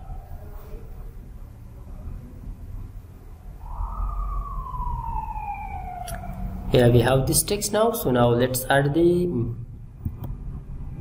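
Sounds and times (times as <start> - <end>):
low rumble: 0.0 - 11.0
siren wailing: 3.5 - 7.9.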